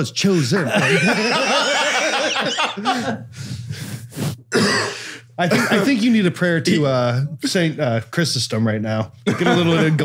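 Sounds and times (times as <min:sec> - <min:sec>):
men laughing breathily: 0:00.3 - 0:03.9.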